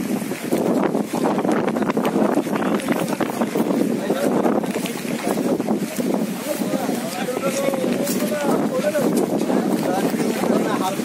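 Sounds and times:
wind buffeting microphone: 0:00.0 - 0:11.0
men talking and calling out: 0:00.1 - 0:11.0.

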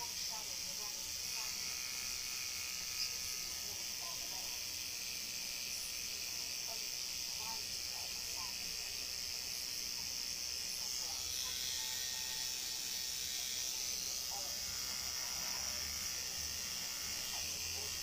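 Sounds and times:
tattoo machine buzzing: 0:00.0 - 0:18.0.

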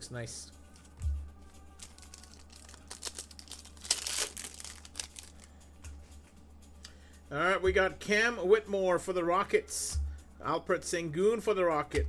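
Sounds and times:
plastic wrapper crinkling and tearing: 0:01.7 - 0:05.5
cards rustling and clicking: 0:01.8 - 0:05.4.

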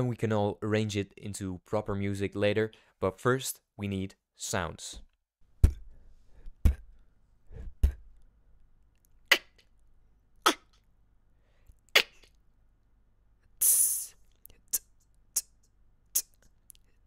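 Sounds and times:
beatboxed kick-drum thumps: 0:05.6 - 0:05.9, 0:06.5 - 0:06.9, 0:07.7 - 0:08.1
beatboxed hi-hat hiss: 0:13.6 - 0:16.4.

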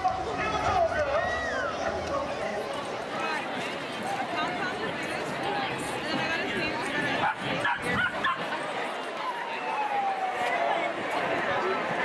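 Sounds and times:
street crowd chatter: 0:00.0 - 0:12.0.

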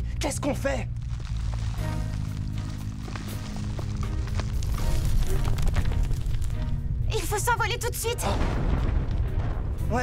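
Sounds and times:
dramatic background music: 0:00.0 - 0:10.0
crackling rock breaking: 0:00.8 - 0:07.6, 0:08.2 - 0:10.0.

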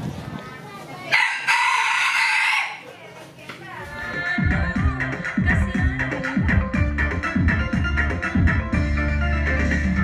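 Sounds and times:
rooster crowing: 0:01.1 - 0:02.9.

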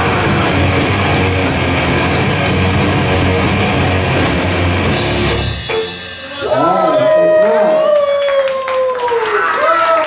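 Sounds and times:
grindcore band playing live: 0:00.0 - 0:08.0
crashing cymbals: 0:04.0 - 0:06.7.

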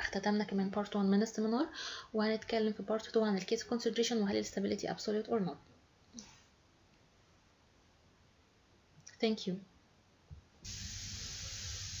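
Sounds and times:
steady hiss: 0:10.6 - 0:12.0.

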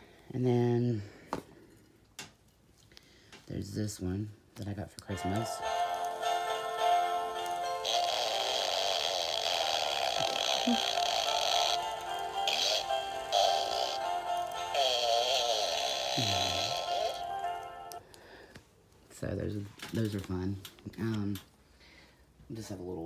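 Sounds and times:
toy playing synthetic singing song: 0:05.1 - 0:18.0.

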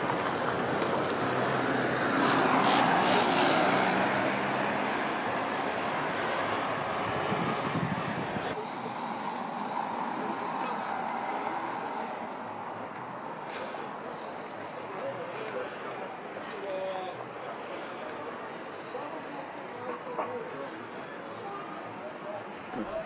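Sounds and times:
vehicle engine: 0:00.0 - 0:16.5
faint voices: 0:00.0 - 0:23.0
road traffic: 0:00.0 - 0:23.0.

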